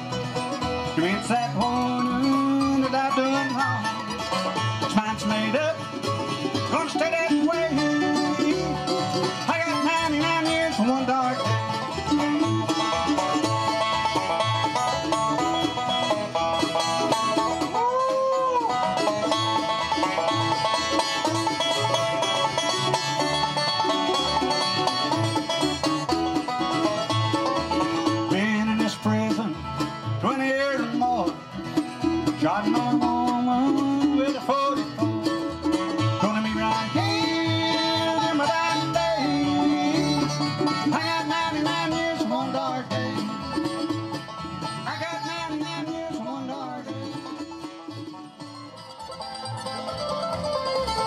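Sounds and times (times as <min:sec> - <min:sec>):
bluegrass band playing: 0:00.0 - 0:51.0.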